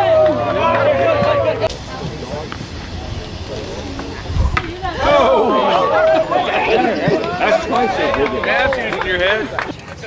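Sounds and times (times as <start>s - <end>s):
spectator chatter: 0.0s - 10.0s.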